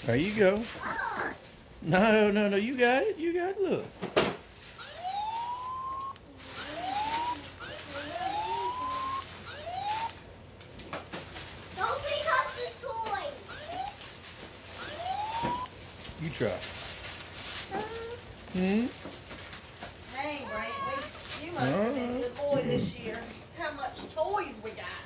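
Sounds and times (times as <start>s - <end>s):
toy siren whoops: 4.8s - 10.2s, 13.5s - 14.0s, 14.8s - 15.7s.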